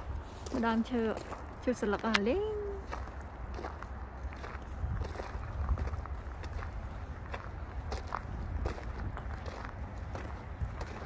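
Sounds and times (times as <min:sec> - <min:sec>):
footsteps on gravel: 0:00.0 - 0:11.0
steady low rumble: 0:00.0 - 0:11.0.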